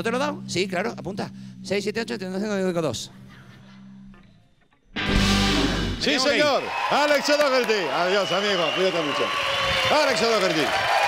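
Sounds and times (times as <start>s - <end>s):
rock band chord: 5.0s - 6.2s
electric guitar ringing: 5.0s - 6.4s.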